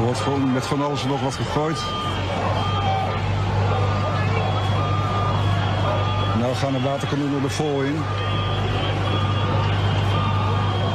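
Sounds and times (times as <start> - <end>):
low engine drone: 0.0 - 10.9
short beeps: 0.1 - 3.2, 4.3 - 10.9.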